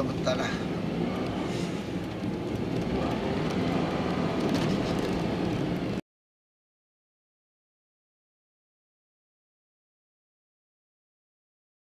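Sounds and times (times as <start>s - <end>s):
car road and engine noise: 0.0s - 6.0s.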